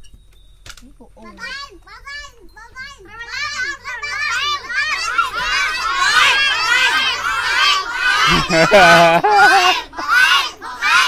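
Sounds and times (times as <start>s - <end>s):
young children talking and calling: 0.8s - 11.0s.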